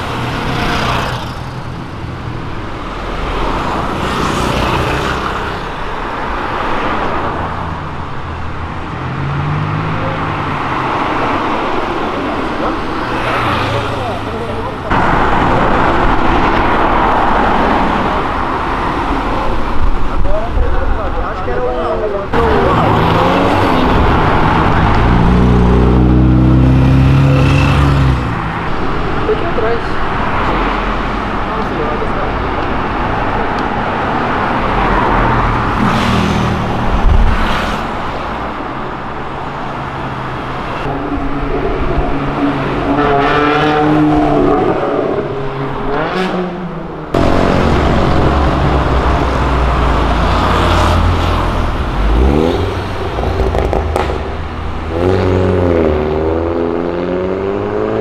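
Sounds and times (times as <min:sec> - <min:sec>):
cars accelerating past: 0:08.7 - 0:19.7, 0:22.3 - 0:29.4, 0:30.2 - 0:38.6, 0:39.8 - 0:58.0.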